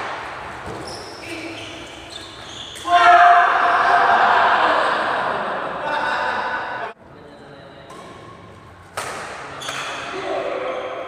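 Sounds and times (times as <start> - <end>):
loud shouting voices: 2.8 - 7.0
racket hitting shuttlecock: 7.9 - 10.1.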